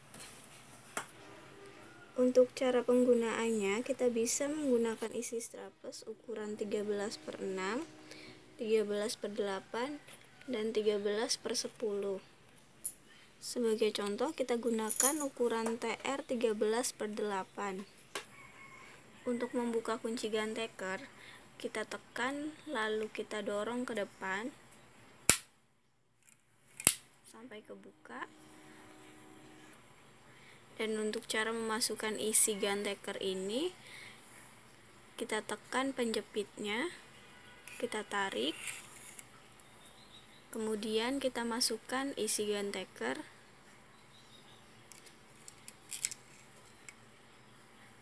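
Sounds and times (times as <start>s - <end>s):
staple gun metal clicks: 26.8s - 27.0s.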